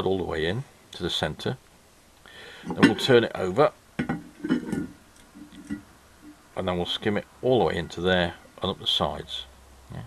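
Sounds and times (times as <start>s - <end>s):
metal disc knocking on table: 4.0s - 5.8s.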